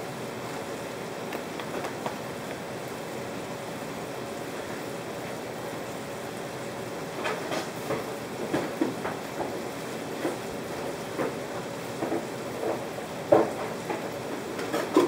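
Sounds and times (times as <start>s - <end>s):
steady background noise: 0.0s - 15.0s
kitchen items knocking and clattering: 14.6s - 15.0s.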